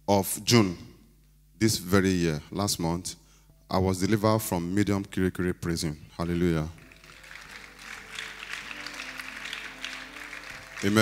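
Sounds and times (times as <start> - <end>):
congregation clapping: 6.4 - 11.0.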